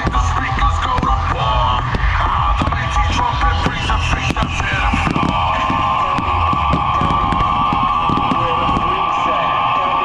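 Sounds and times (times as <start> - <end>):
fireworks popping: 0.0 - 9.2
loud music: 0.0 - 10.0.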